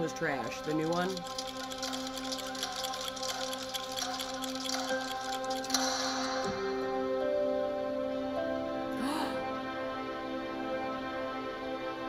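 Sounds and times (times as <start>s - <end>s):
clocks ticking: 0.0s - 7.0s.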